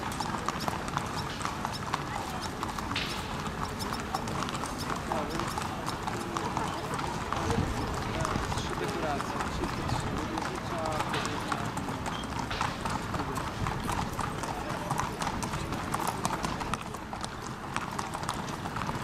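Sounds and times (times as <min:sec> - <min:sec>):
hooves clip-clopping: 0:00.0 - 0:19.0
murmur of crowd voices: 0:00.0 - 0:19.0.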